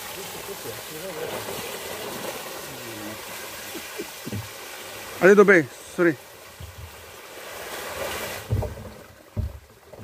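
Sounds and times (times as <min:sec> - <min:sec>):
dull thumps: 0:08.4 - 0:10.0.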